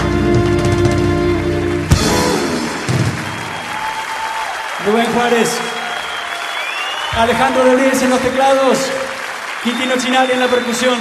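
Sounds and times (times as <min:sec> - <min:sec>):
audience applauding: 0:01.6 - 0:11.0.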